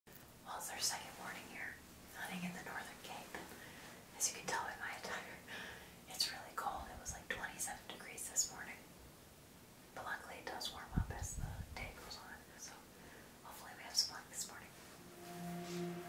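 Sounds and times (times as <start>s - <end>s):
woman whispering: 0.5s - 3.5s, 4.1s - 5.5s, 6.1s - 8.8s, 10.0s - 14.8s.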